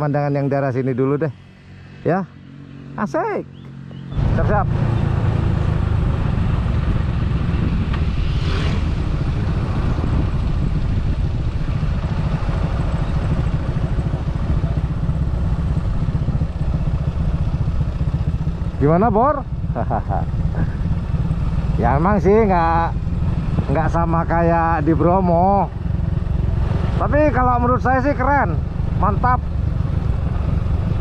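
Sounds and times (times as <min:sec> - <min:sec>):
motorcycle engine running: 0:03.6 - 0:31.0
wind noise on microphone: 0:05.8 - 0:14.6.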